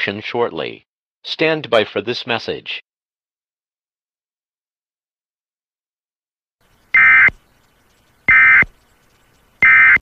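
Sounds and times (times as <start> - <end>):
buzzy digital data tones: 6.9 - 7.4.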